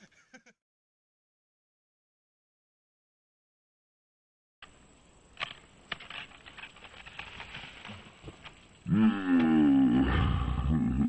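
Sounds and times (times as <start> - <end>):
board scraping down dirt slope: 5.5 - 8.8.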